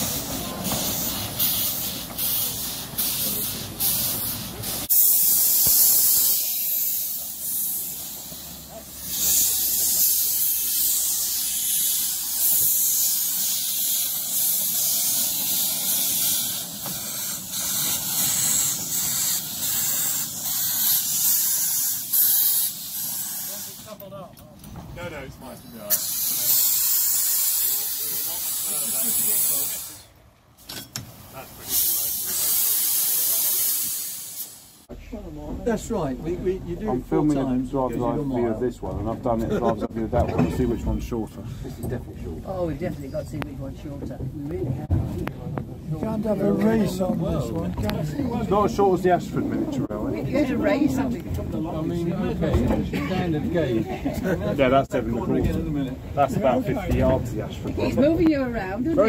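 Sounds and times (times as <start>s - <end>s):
steam locomotive hissing: 0.0s - 24.2s, 25.7s - 30.2s, 31.0s - 35.2s.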